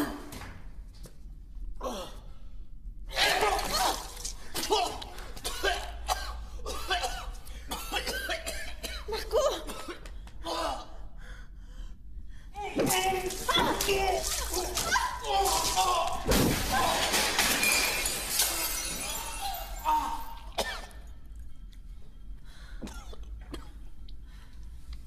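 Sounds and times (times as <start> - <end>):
crashing: 12.8 - 19.8
glass shattering: 13.0 - 20.5
man crying out and groaning: 18.6 - 20.6.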